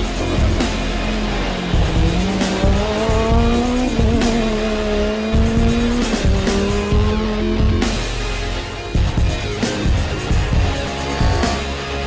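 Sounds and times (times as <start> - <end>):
rally car engine revving: 0.0 - 8.1, 10.1 - 12.0
background music: 0.0 - 12.0.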